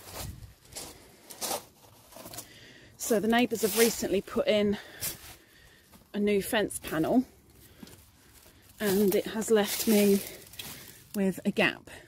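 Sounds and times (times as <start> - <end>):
footsteps on gravel: 6.9 - 11.1.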